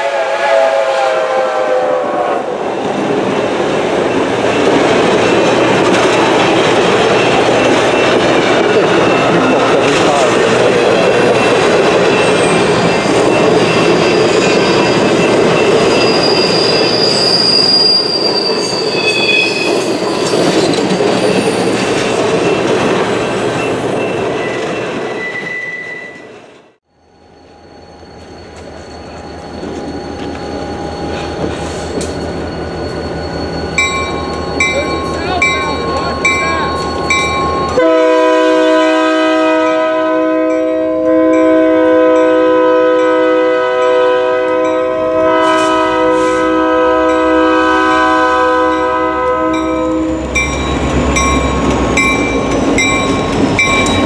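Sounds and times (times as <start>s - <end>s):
locomotive air horn chord: 0.0s - 2.6s, 37.8s - 50.1s
diesel locomotive rumbling: 0.0s - 25.6s, 26.2s - 54.0s
train wheels rumbling on track: 0.0s - 54.0s
crossing bell ringing: 2.6s - 26.3s, 27.3s - 38.5s, 40.2s - 54.0s
high wheel squeals: 2.7s - 37.8s.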